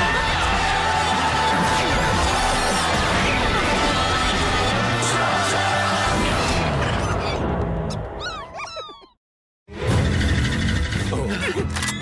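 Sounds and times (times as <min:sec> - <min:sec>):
loud cartoon music: 0:00.0 - 0:08.8, 0:09.7 - 0:11.8
quick falling squeaks: 0:08.2 - 0:09.2.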